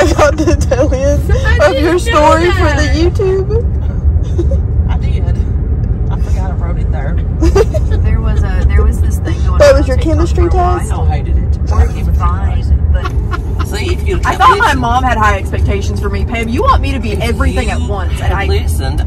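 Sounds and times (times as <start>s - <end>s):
quiet voices talking: 0.0s - 4.0s
car road and engine rumble: 0.0s - 19.0s.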